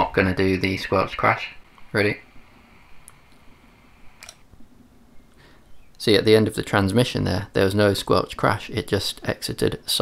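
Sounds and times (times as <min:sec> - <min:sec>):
walkie-talkie hiss: 0:00.5 - 0:04.4.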